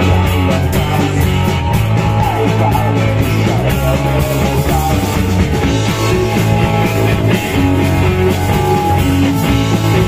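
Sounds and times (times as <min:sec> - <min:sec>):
bass guitar: 0:00.0 - 0:10.0
drum kit: 0:00.0 - 0:10.0
electric guitars: 0:00.0 - 0:10.0
keyboards: 0:00.0 - 0:10.0.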